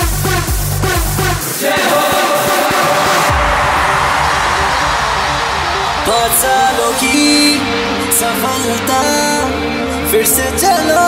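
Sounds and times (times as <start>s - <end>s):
instrumental pop music: 0.0s - 11.0s
repeating low bass line: 3.2s - 9.9s.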